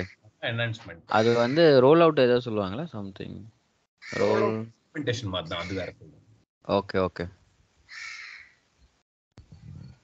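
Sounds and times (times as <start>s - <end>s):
harsh bird call: 4.0s - 4.5s.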